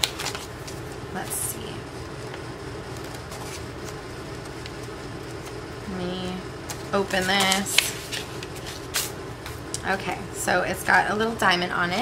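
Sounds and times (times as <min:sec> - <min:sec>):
paper envelope rustling: 0:00.0 - 0:01.1, 0:02.9 - 0:05.6, 0:06.6 - 0:09.6.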